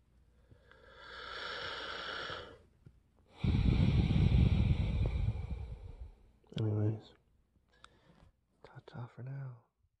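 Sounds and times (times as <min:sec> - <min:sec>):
man speaking quietly: 0:06.6 - 0:07.2.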